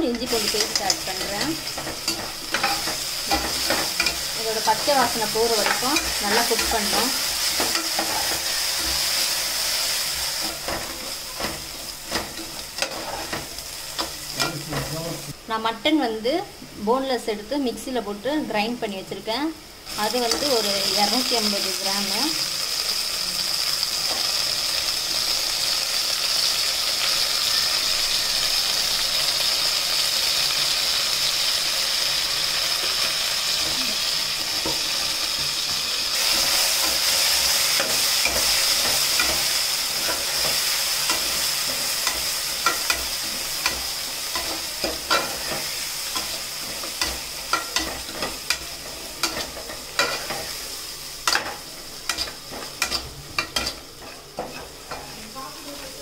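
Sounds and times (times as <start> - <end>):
onions and meat sizzling in oil: 0.0 - 56.0.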